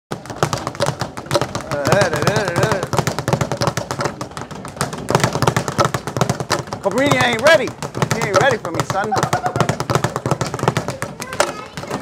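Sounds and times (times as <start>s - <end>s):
speed bag rattling: 0.1s - 12.0s.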